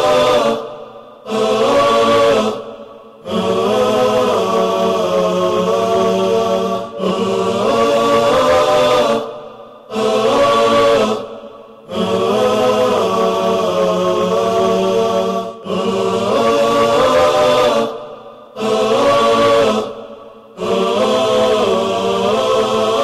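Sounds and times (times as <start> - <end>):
voices chanting without instruments: 0.0 - 23.0.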